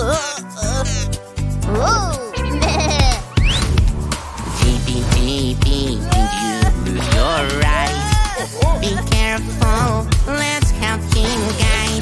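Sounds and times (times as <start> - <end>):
children's song backing music: 0.0 - 3.6, 4.5 - 12.0
rising whistle-like zip: 3.4 - 4.6.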